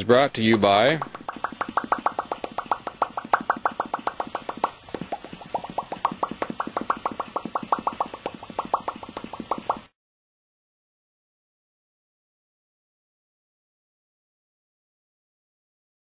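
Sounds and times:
rapid short pitched bloops: 0.7 - 9.9.

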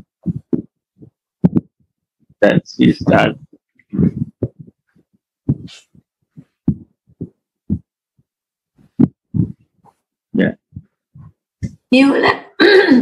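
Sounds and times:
man murmuring: 2.4 - 4.6, 10.4 - 10.7.

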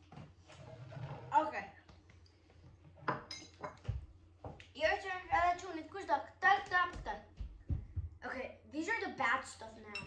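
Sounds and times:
tableware clinking and knocking: 3.0 - 3.9.

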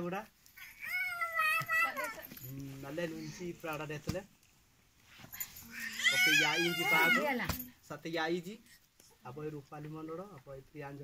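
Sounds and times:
high-pitched wavering cry: 5.6 - 7.4.

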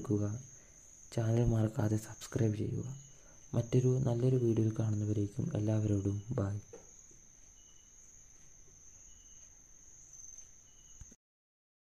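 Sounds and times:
steady high-pitched tone: 0.0 - 11.2.

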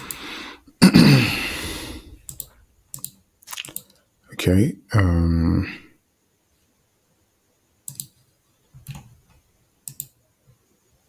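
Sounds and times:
man clearing his throat: 0.8 - 1.5
computer mouse clicks: 2.2 - 4.1, 7.8 - 10.2.

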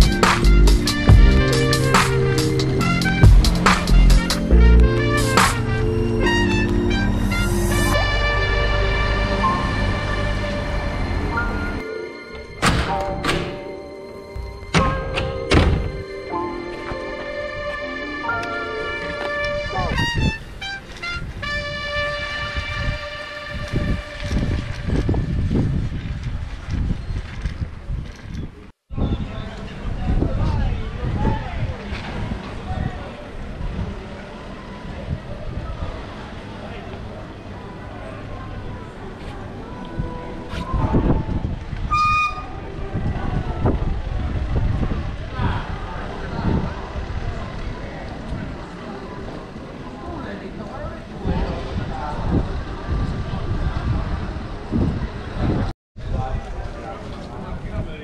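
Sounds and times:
wind and road noise: 0.0 - 58.0
short horn toot: 18.9 - 25.5, 41.9 - 42.6
passers-by talking: 29.0 - 58.0.

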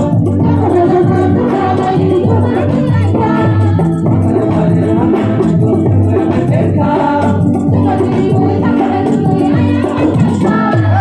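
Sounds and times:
group of men and women singing: 0.0 - 11.0.

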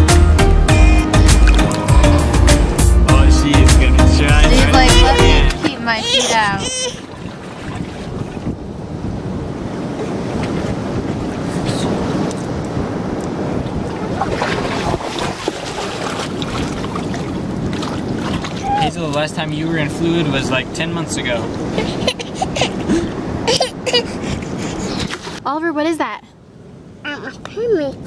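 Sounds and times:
surf: 0.0 - 25.9
baby crying: 4.4 - 7.1, 18.6 - 19.0, 22.0 - 25.0
wind noise on microphone: 4.8 - 25.5.

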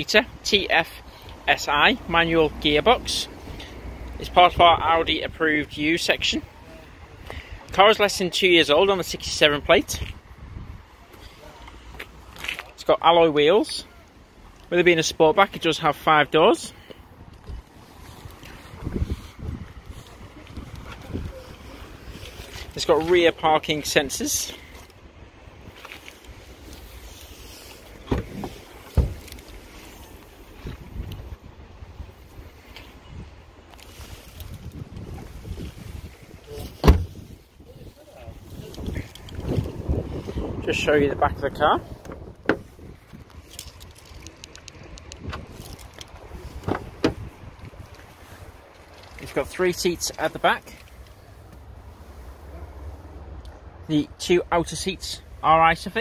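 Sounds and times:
wind buffeting microphone: 9.9 - 11.0, 17.2 - 22.8, 30.5 - 33.5, 34.3 - 48.9
tailgate slamming shut: 28.0 - 29.3, 36.8 - 37.2
tailgate knocks: 28.1 - 29.2, 36.8 - 37.2.

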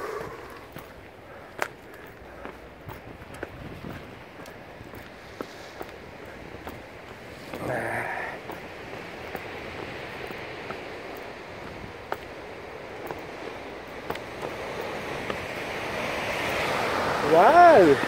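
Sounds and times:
sea waves on rocky shore: 0.0 - 18.0
wind on microphone: 2.8 - 12.8.

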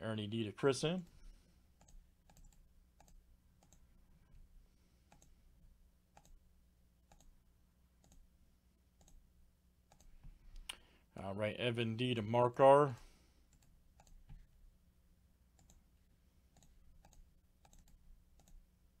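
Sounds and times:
computer mouse clicking: 1.8 - 3.8, 5.1 - 5.4, 6.1 - 6.4, 7.0 - 7.4, 8.0 - 8.2, 9.0 - 9.2, 9.9 - 10.8, 13.5 - 14.5, 15.6 - 15.8, 16.5 - 18.6.

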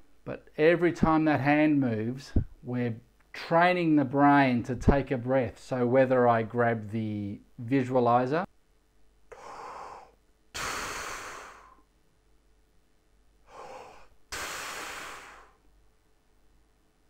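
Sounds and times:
man breathing deeply: 9.3 - 11.9, 13.4 - 15.7.

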